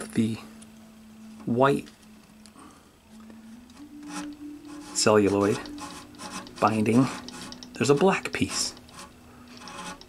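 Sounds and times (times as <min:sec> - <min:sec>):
faint low hum: 0:00.0 - 0:10.0
fine-toothed saw rasping: 0:03.7 - 0:10.0.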